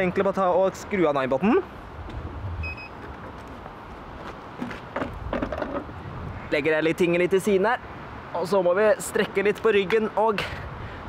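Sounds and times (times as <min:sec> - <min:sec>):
low rumble: 0:02.0 - 0:02.9
handling noise of wheel: 0:02.0 - 0:06.1
short electronic beep: 0:02.6 - 0:03.0.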